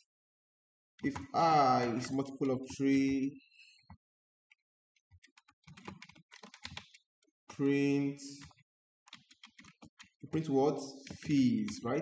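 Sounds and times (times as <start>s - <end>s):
typing on keyboard: 1.0s - 1.4s, 5.0s - 7.0s, 8.2s - 12.0s.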